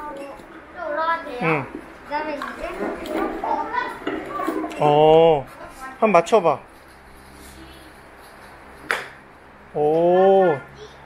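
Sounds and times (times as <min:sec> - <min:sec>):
electric fan humming: 0:00.0 - 0:11.0.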